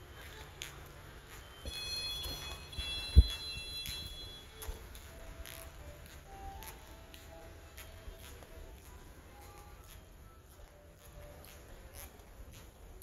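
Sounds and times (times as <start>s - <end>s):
footsteps on tile floor: 0.0s - 13.0s
high electronic tones: 1.6s - 4.6s.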